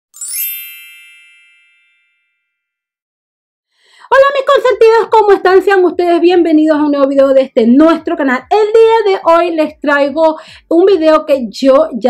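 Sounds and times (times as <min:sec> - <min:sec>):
sparkly rising chime: 0:00.1 - 0:02.3.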